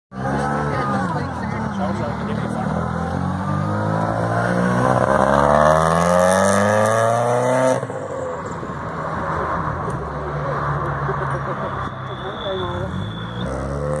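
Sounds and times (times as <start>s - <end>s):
car accelerating past: 0.2s - 8.2s.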